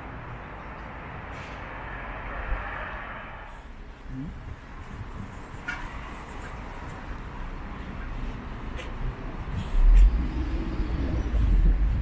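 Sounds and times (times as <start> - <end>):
low rumble of street traffic: 0.0 - 12.0
vehicle passing: 1.0 - 3.8, 4.9 - 12.0
wind rumbling on microphone: 1.9 - 12.0.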